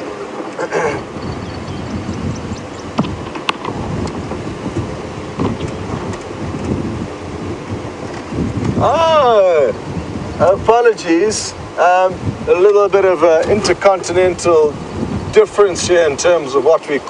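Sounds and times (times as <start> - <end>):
vehicle rumble on dirt track: 0.0 - 8.9.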